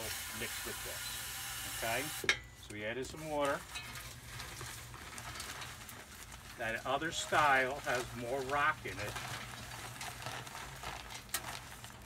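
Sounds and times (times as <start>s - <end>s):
dry concrete mix pouring: 0.0s - 12.0s.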